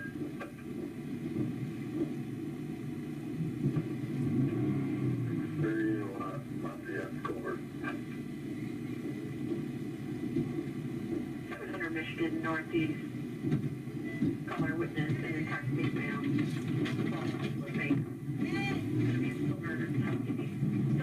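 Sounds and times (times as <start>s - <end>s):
low steady car cabin rumble: 0.0s - 21.0s
muffled voices: 5.2s - 21.0s.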